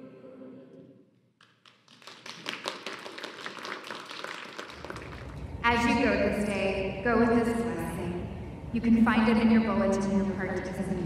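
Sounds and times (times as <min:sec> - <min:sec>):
congregation clapping: 0:01.4 - 0:05.6.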